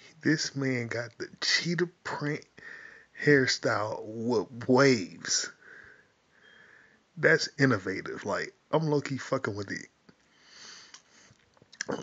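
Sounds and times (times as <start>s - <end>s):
man speaking: 0.2s - 2.6s, 3.2s - 5.6s, 7.2s - 9.9s.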